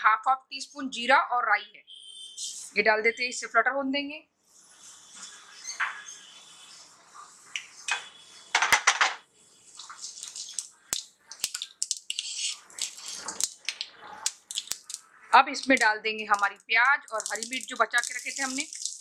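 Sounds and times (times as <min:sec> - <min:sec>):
spatula stirring in pan: 0:09.4 - 0:19.0
seeds sizzling and popping in oil: 0:09.6 - 0:19.0.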